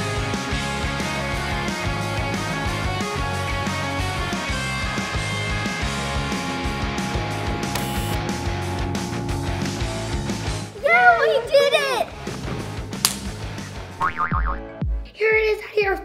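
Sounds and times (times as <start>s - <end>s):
rock music with steady beat: 0.0s - 10.8s, 12.1s - 15.1s.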